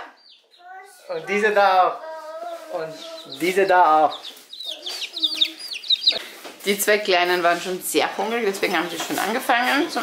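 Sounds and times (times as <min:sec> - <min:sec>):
chicks peeping: 0:00.0 - 0:07.6.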